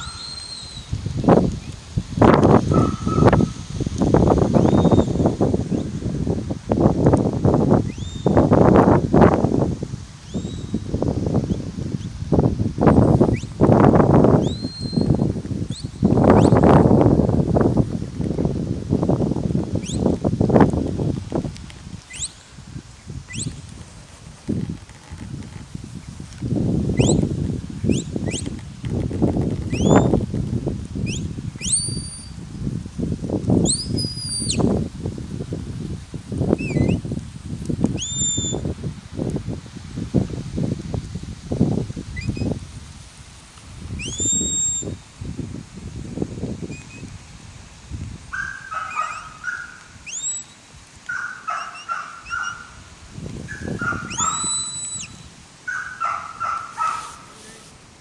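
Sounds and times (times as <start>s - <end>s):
shepherd's whistle blasts: 2.7s - 3.5s, 38.0s - 38.6s, 44.0s - 44.9s, 50.0s - 50.5s, 54.1s - 55.3s.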